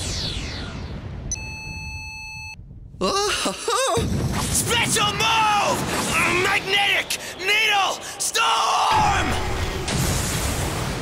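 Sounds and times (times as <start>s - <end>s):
steady electronic beep: 0.0s - 2.6s.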